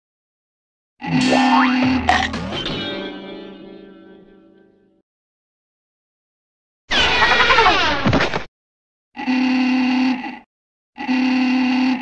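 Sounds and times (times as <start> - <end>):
horn-like tone blasts: 1.0 - 4.6
sweep falling in pitch: 1.0 - 4.6.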